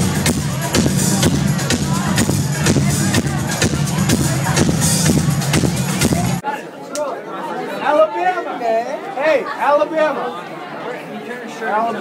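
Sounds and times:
electronic dance music: 0:00.0 - 0:06.4
people talking close to microphone: 0:00.0 - 0:12.0.

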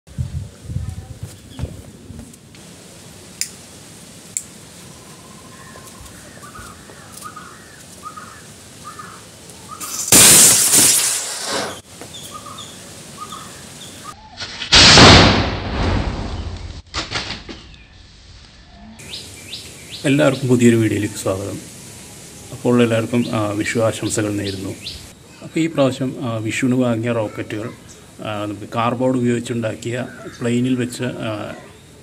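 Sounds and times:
birds chirping faintly: 0:04.5 - 0:09.9, 0:11.7 - 0:14.4, 0:17.4 - 0:32.0
firework rocket hissing whoosh: 0:09.8 - 0:11.9.

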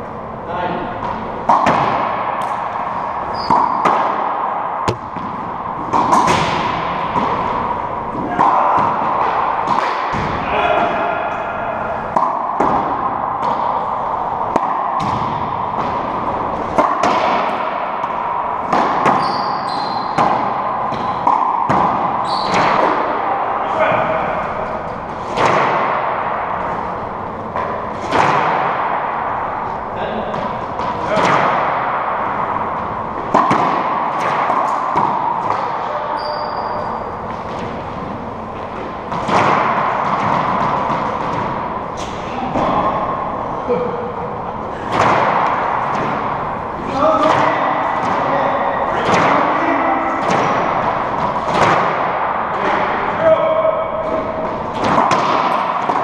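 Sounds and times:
ball cracking off racquets: 0:01.0 - 0:11.0, 0:12.1 - 0:23.4, 0:24.0 - 0:36.0, 0:36.6 - 0:43.3, 0:54.0 - 0:56.0
ball smacking walls and floor: 0:01.0 - 0:11.1, 0:12.0 - 0:43.3, 0:44.8 - 0:53.0, 0:54.0 - 0:56.0.

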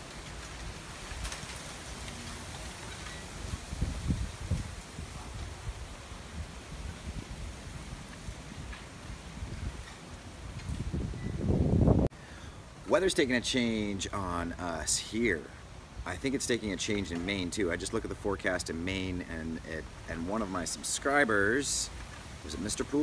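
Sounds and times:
wind rumbling on microphone: 0:00.0 - 0:12.1
wind gusting through fronds: 0:00.0 - 0:23.0.

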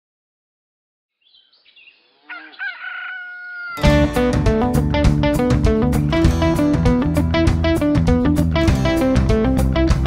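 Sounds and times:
rooster crowing: 0:02.2 - 0:03.9
country music with strummed guitar: 0:03.8 - 0:10.0.

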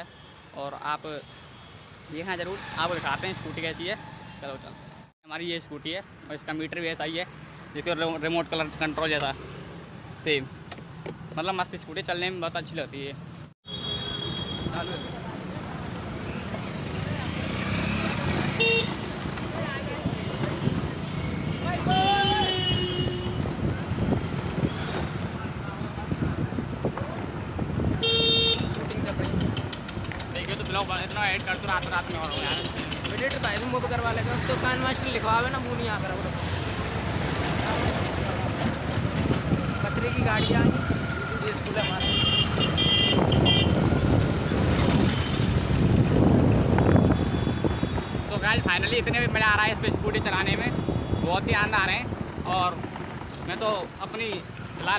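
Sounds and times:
road and wind noise: 0:00.0 - 0:54.9
vehicle horn beeps: 0:13.6 - 0:15.1, 0:21.9 - 0:23.4, 0:28.0 - 0:28.7, 0:41.8 - 0:43.8
wind buffeting microphone: 0:23.4 - 0:28.0, 0:38.6 - 0:39.9, 0:42.5 - 0:53.3.

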